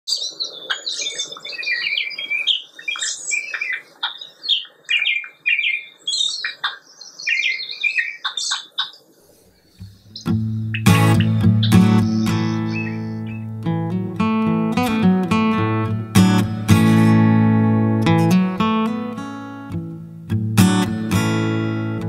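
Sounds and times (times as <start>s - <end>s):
songbirds chirping and trilling: 0.1s - 19.9s.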